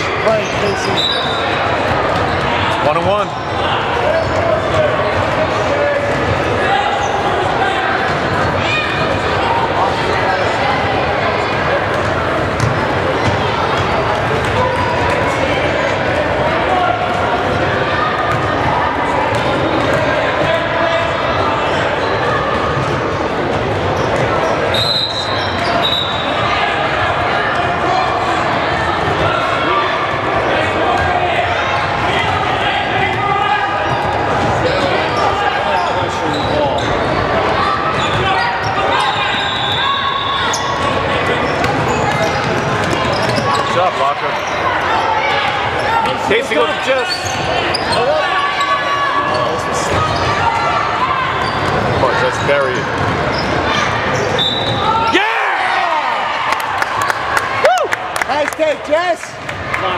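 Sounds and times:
echoing crowd chatter: 0.0 - 59.9.

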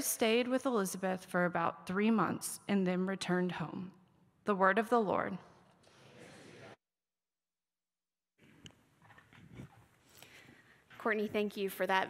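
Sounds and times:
rustling of people moving: 8.4 - 11.9.

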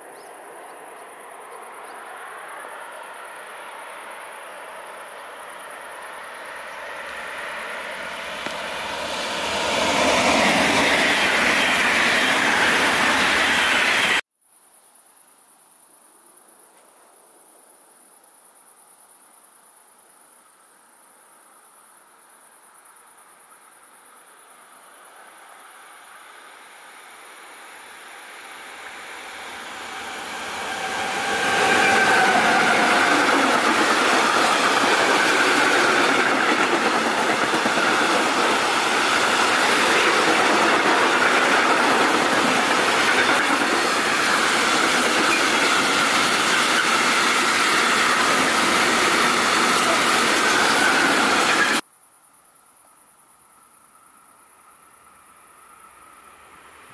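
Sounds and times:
freight train passing: 0.0 - 14.2, 25.1 - 51.8, 55.3 - 56.9
passenger train passing at speed: 0.0 - 14.2, 25.0 - 51.8, 55.3 - 56.9.

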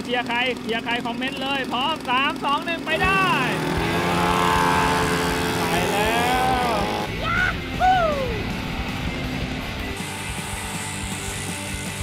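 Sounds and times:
small motorcycle engines revving: 0.0 - 12.0
person shouting: 4.0 - 8.4.

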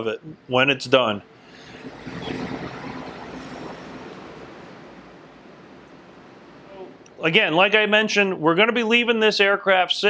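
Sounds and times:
steady rushing noise: 1.2 - 7.6.

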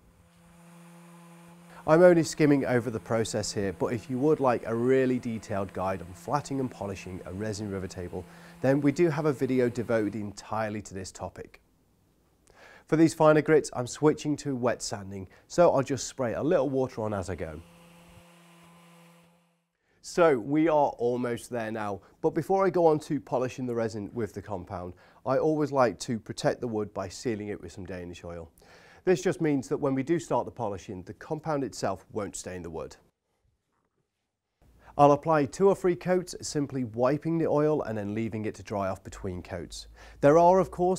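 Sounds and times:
orbital sander humming: 0.0 - 11.1, 16.5 - 19.6
person narrating: 1.8 - 11.5.

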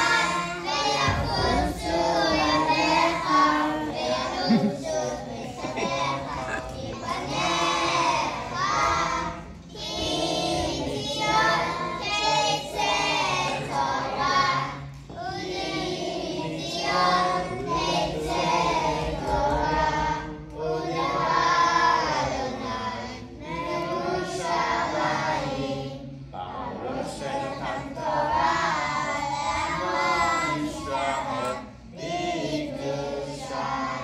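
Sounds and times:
children singing together: 0.0 - 34.0.

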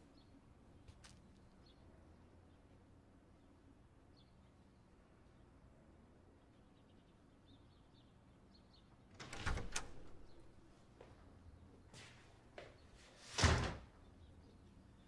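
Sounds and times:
door latch click and rustle: 9.1 - 10.5
door shutting with heavy thud: 9.2 - 10.5, 13.4 - 13.9.

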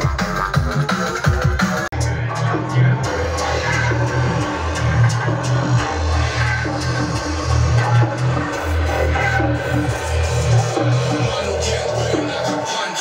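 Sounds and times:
loud electronic dance music: 0.0 - 13.0.

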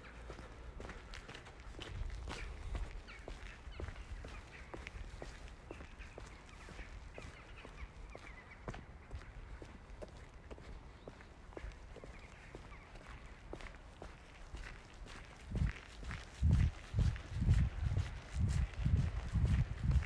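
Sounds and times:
footsteps on pavement: 0.0 - 20.0.

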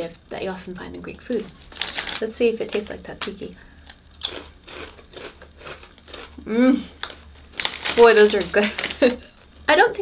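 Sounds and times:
potato chip crunching: 1.3 - 9.5.

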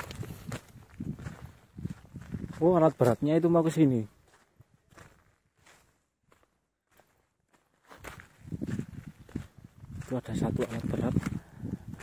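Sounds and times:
footsteps on sand and stones: 0.0 - 12.0.

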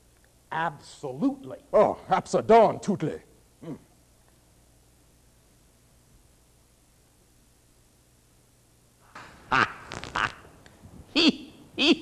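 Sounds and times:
man laughing loudly: 9.5 - 10.5.

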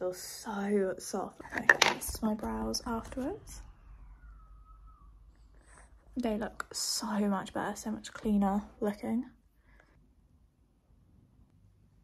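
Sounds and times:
faint falling tone: 3.3 - 5.5.

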